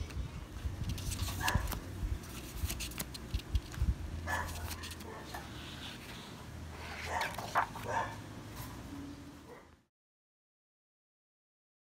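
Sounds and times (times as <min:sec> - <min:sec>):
low steady hum: 0:00.0 - 0:09.9
dog yipping: 0:01.4 - 0:01.7, 0:04.3 - 0:05.5.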